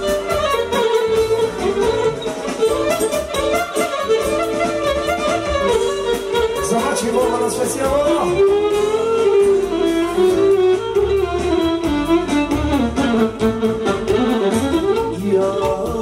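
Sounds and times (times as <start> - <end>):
live band with accordion: 0.0 - 16.0
man singing into microphone: 15.0 - 16.0.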